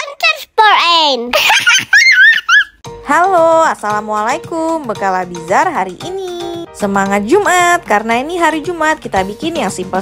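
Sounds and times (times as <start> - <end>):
children squealing and giggling: 1.6 - 2.8.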